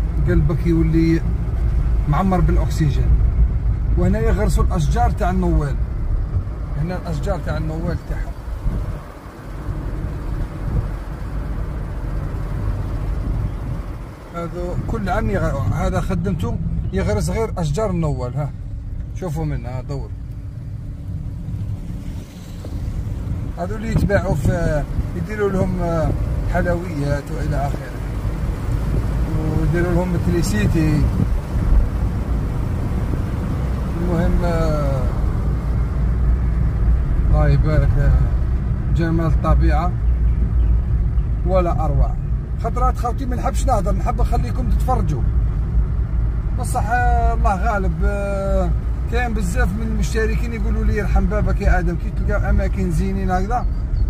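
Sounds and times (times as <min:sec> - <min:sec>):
car engine and tyre noise: 0:00.0 - 0:54.0.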